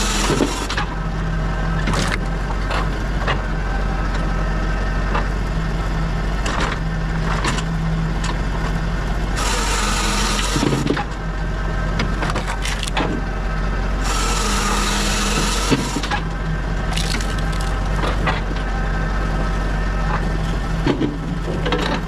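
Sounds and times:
saw cutting log: 0.0s - 0.9s, 9.3s - 11.1s, 12.0s - 13.2s, 14.0s - 16.2s, 16.9s - 18.3s
machine drive droning: 0.0s - 22.0s
wood splitting with sharp snaps: 12.0s - 13.2s, 16.9s - 18.4s
wood pieces clattering: 12.3s - 13.0s, 16.9s - 18.3s.

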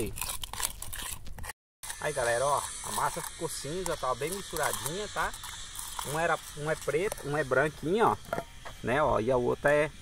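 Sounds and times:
spoon scraping paste in metal can: 0.0s - 8.4s.

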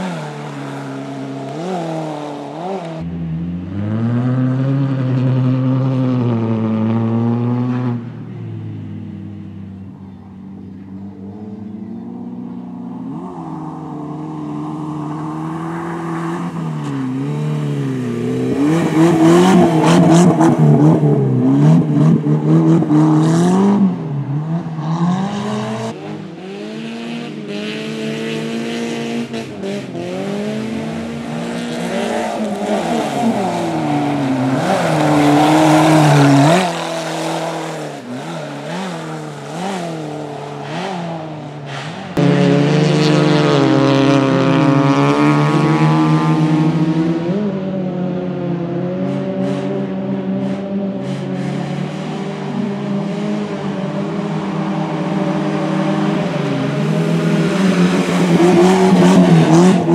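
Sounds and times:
racing car engine revving: 10.1s - 59.9s.

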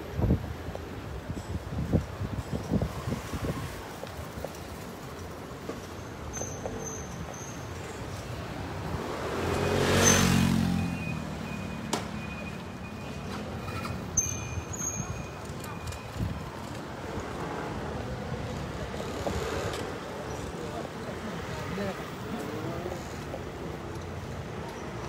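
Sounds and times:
street hum: 0.0s - 25.0s
vehicle passing close by: 8.8s - 11.9s.

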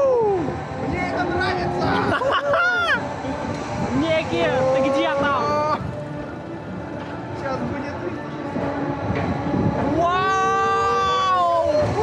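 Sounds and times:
riders yelling and shrieking: 0.0s - 6.5s, 9.8s - 12.0s
rushing noise of fairground ride: 0.0s - 12.0s.

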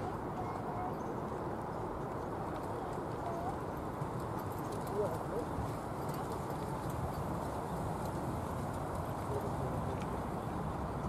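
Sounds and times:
horses trotting on sand: 0.0s - 11.0s.

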